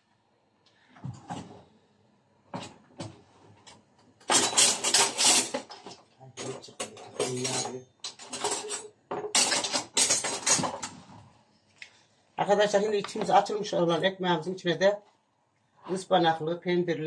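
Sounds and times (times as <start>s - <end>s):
kitchen utensils clattering: 4.2s - 11.2s.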